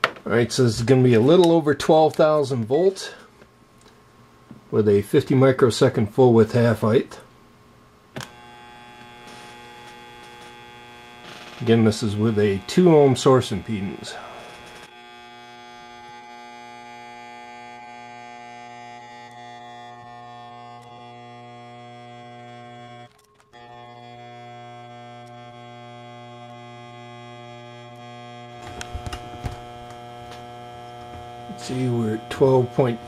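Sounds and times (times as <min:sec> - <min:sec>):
electrical buzz: 0:08.1 - 0:33.0.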